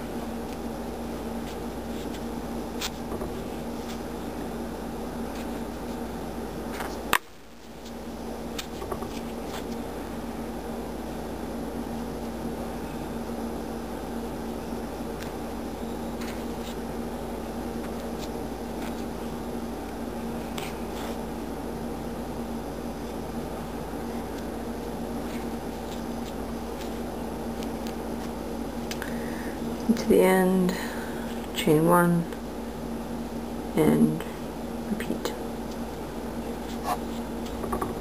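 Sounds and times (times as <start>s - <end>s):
fan or appliance hum: 0.0s - 38.0s.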